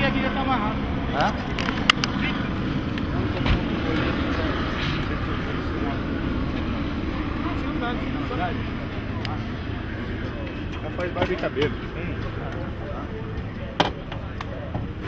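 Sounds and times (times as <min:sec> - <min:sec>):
indistinct voices: 0:00.0 - 0:15.0
vehicle engine rumbling: 0:00.0 - 0:15.0.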